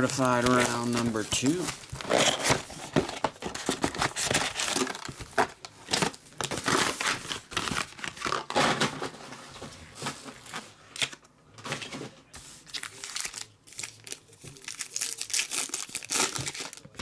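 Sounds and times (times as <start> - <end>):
card packs crinkling: 0.0 - 12.0, 12.6 - 17.0.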